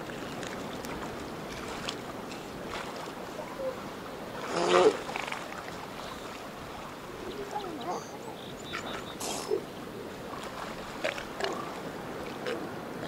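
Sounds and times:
surf: 0:00.0 - 0:13.0.

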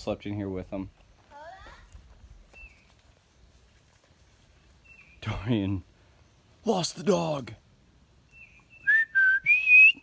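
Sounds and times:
person whistling: 0:08.8 - 0:10.0.

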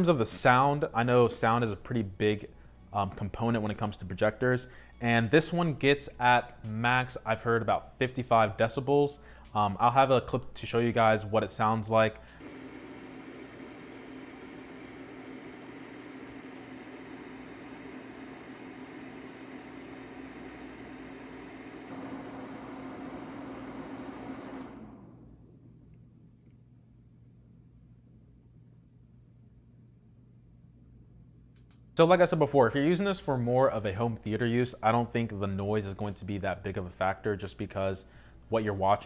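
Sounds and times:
projector cooling fan whirring: 0:11.0 - 0:26.5.

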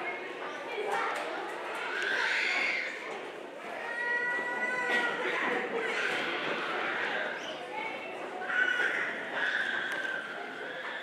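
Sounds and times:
child crying out through microphone: 0:03.8 - 0:05.2.

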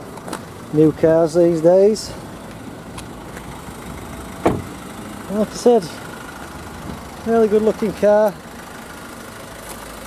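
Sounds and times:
car door shutting: 0:04.4 - 0:04.8.

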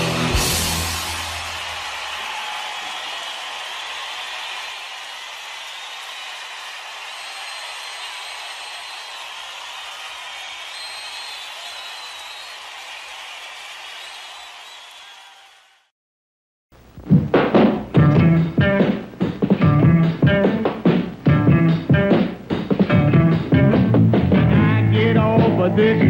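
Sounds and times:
audience applause and cheering: 0:00.0 - 0:15.9
whistles from audience: 0:00.6 - 0:15.8.

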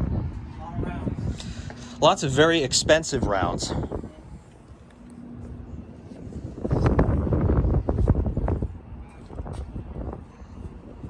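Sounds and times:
wind buffeting microphone: 0:00.0 - 0:11.0.

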